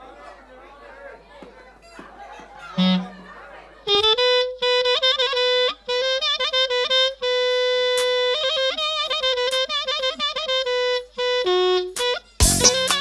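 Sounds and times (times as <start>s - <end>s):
reed instrument melody: 2.8s - 13.0s
live band music: 8.0s - 13.0s.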